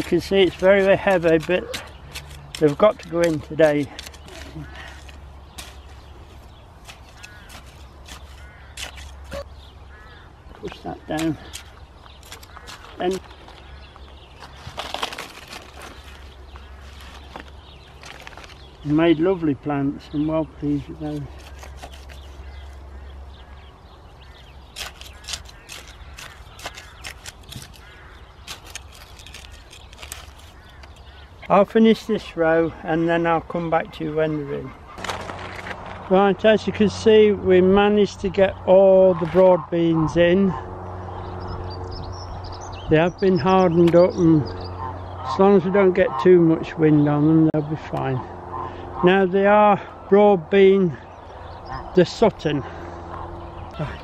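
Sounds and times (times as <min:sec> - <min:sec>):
trowel scraping stony soil: 0:00.0 - 0:09.7, 0:10.6 - 0:13.7, 0:14.4 - 0:18.8, 0:20.6 - 0:22.8, 0:24.6 - 0:34.2
bird calling: 0:00.0 - 0:36.2, 0:37.5 - 0:54.0.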